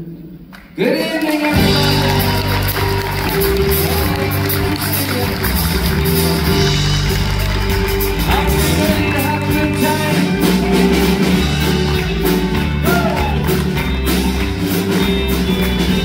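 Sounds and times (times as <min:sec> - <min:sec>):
live pop-country band playing: 0:01.3 - 0:16.0.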